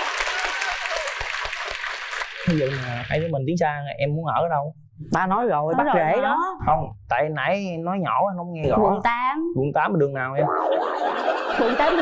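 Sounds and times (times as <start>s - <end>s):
audience applauding: 0.0s - 3.3s.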